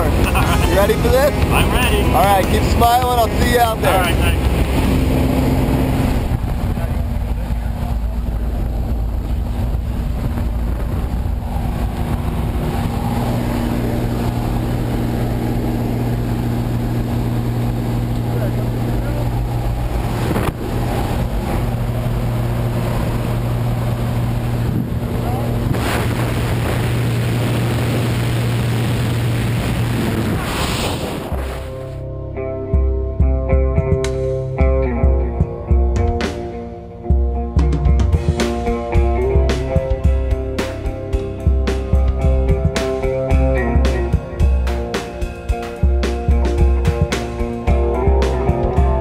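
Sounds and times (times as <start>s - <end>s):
wind noise on microphone: 0.0s - 32.0s
small plane engine drone: 0.0s - 33.4s.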